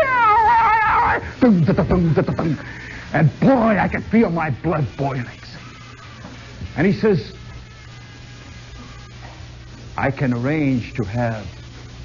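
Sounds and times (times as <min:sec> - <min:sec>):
man wailing a high wavering note: 0:00.0 - 0:01.3.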